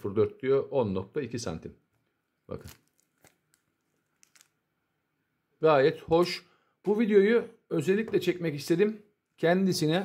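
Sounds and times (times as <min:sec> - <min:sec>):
person speaking: 0:00.0 - 0:01.8, 0:02.4 - 0:03.0, 0:05.6 - 0:10.0
plastic packet crinkling: 0:02.5 - 0:04.6.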